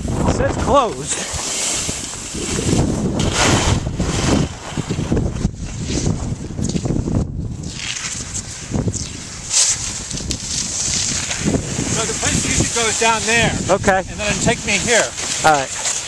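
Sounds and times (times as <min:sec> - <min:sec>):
wind buffeting microphone: 0:00.0 - 0:15.8
skis scraping on icy snow: 0:00.9 - 0:06.9, 0:07.6 - 0:16.0.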